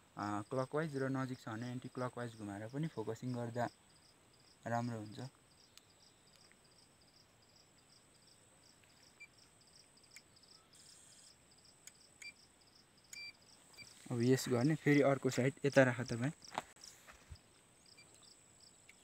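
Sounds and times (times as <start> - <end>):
faint insects chirping: 0.0 - 19.0.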